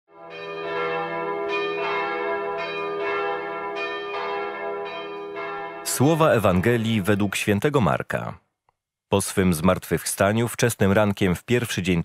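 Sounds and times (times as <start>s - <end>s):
bell chimes ringing: 0.2s - 7.6s
held low tone: 6.1s - 7.7s.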